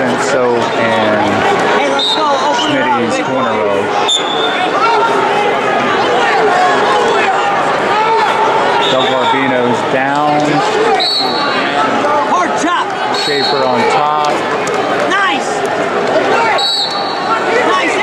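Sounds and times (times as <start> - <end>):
crowd shouting: 0.0 - 18.0
high whistle blasts: 4.0 - 4.6, 11.0 - 11.5, 16.6 - 17.3.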